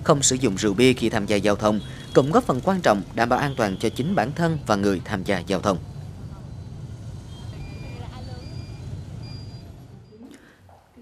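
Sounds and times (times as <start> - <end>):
motorbike engines rumbling: 0.0 - 11.0
short high beeps: 6.4 - 10.3.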